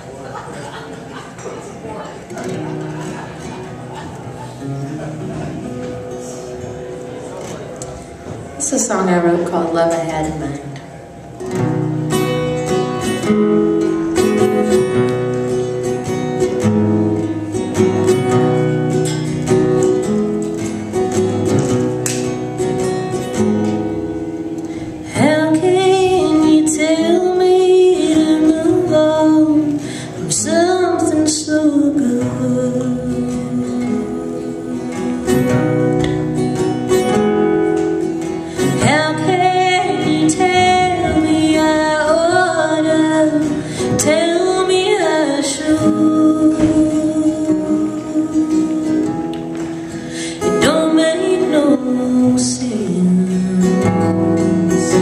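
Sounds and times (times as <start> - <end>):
acoustic guitar strumming: 0.0 - 55.0
woman singing: 25.1 - 35.7, 38.6 - 49.6, 50.2 - 55.0.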